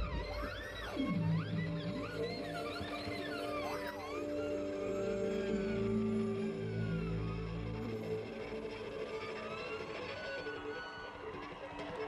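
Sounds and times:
violin sliding in pitch: 0.0s - 12.0s.

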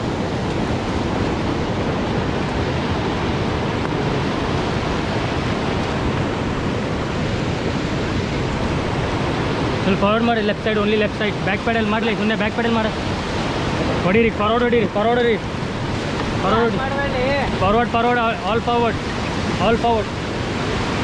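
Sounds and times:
river rapids rushing: 0.0s - 21.0s.

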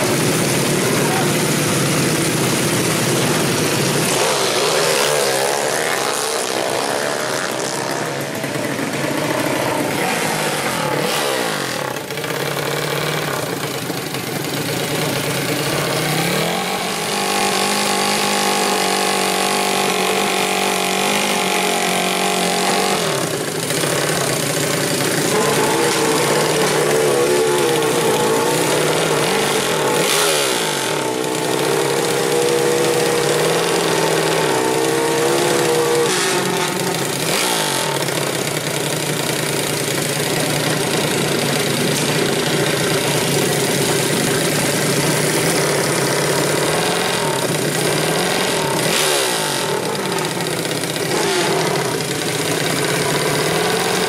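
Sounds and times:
motorcycle engine revving: 0.0s - 54.0s
other engines: 0.0s - 54.0s.

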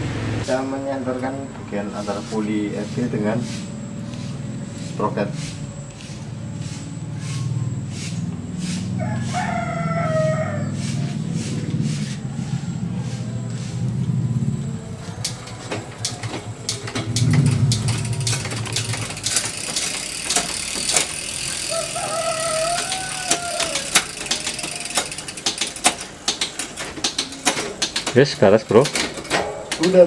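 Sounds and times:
sharp drivetrain clicks: 10.8s - 30.0s
low rumble: 11.2s - 19.6s
bike chain running over cassette: 15.2s - 29.1s.

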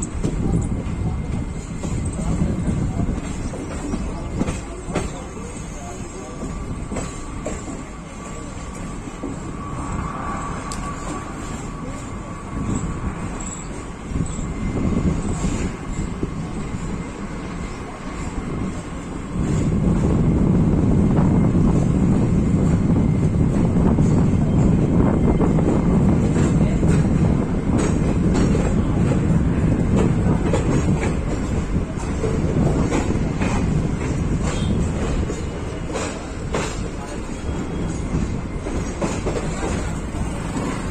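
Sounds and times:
train wheels rumbling on rail: 0.0s - 40.9s.

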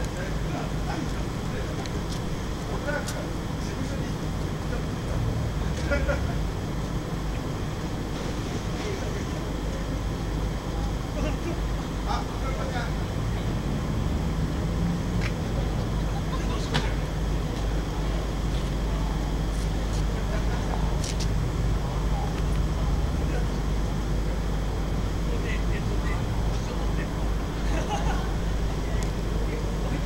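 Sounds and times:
low outdoor rumble: 0.0s - 30.0s.

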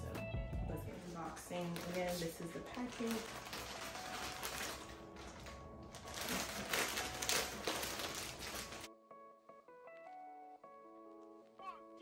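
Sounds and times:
background music: 0.0s - 12.0s
plastic bag crinkling: 1.2s - 8.9s.

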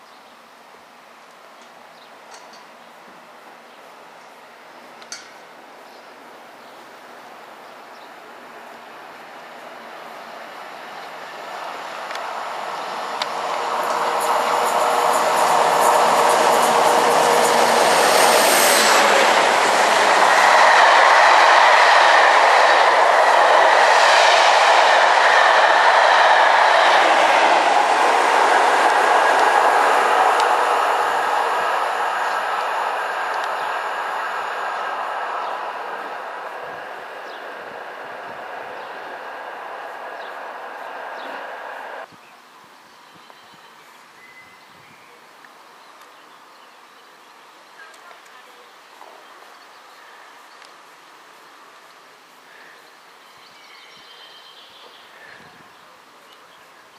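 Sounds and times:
train wheels rushing on rails: 8.3s - 42.1s.

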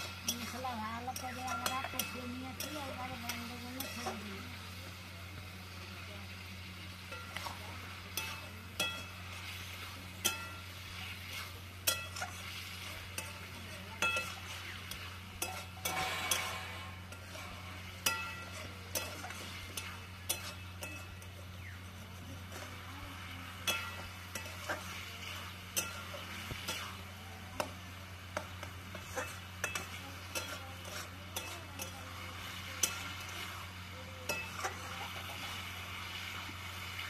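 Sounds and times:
faint sizzle of frying: 0.0s - 37.0s
metal spoon clinking in pot: 11.8s - 12.4s, 13.1s - 16.5s, 18.0s - 21.7s, 23.6s - 24.9s, 25.7s - 27.0s, 29.0s - 32.0s, 32.7s - 33.3s.

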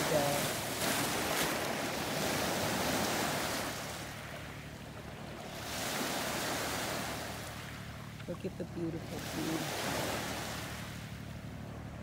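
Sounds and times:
sea waves washing: 0.0s - 11.4s.

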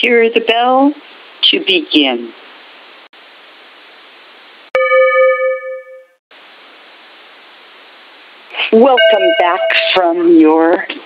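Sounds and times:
steady telephone line hiss: 0.0s - 4.7s, 6.3s - 11.0s
bell ringing: 4.8s - 6.2s, 9.0s - 10.2s.

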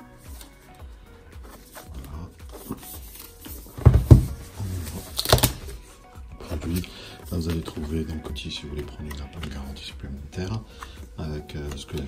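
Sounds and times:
quiet background music: 0.0s - 12.0s
paper rustle: 1.4s - 5.8s
cardboard box being handled: 2.5s - 5.8s
box thumping on wooden table: 3.7s - 4.5s.

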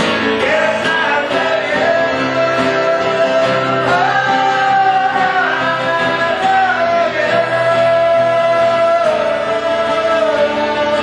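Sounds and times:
acoustic guitars: 0.0s - 11.0s
man singing: 0.0s - 11.0s.

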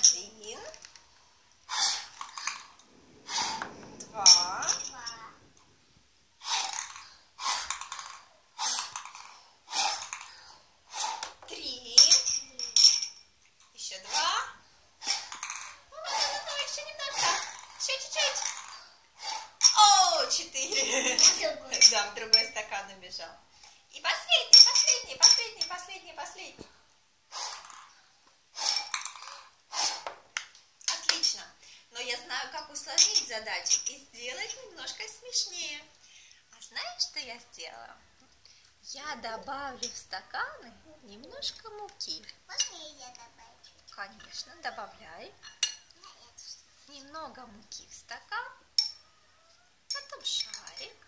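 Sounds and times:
child blowing into glasses: 1.7s - 2.6s, 3.2s - 4.1s, 6.4s - 9.0s, 9.6s - 11.3s, 19.2s - 19.6s, 27.3s - 27.9s, 28.5s - 30.1s
breath blown into a glass: 3.2s - 4.0s
balls clinking against glass: 3.5s - 5.5s, 12.0s - 13.4s
child's voice: 4.7s - 5.4s, 42.5s - 43.8s, 46.0s - 46.4s.

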